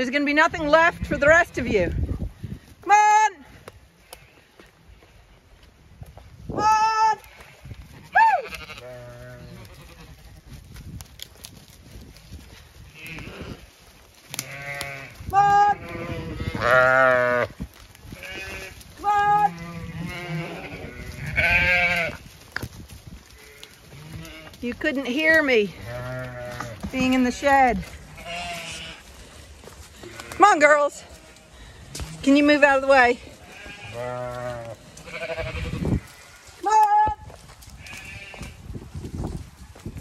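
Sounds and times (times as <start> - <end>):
sheep bleating: 8.1 - 10.3, 12.9 - 13.6, 14.4 - 22.2, 23.4 - 24.6, 25.8 - 29.0, 32.8 - 37.2, 37.8 - 38.5.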